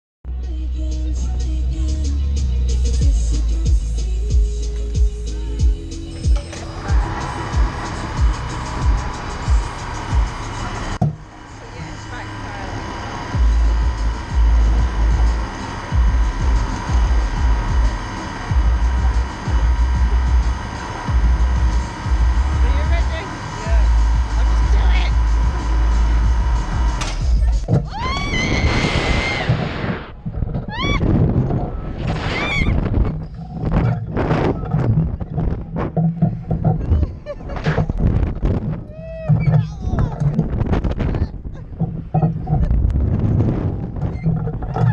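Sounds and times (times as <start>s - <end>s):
background music: 0.3s - 29.5s
wind buffeting microphone: 13.3s - 44.9s
riders screaming: 27.8s - 30.1s, 30.7s - 31.2s, 32.1s - 32.9s
sudden rush of air: 28.1s - 34.5s.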